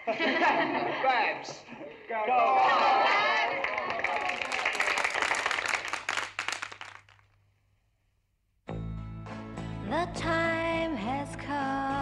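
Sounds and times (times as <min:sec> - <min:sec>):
crowd clapping: 0:02.4 - 0:07.4.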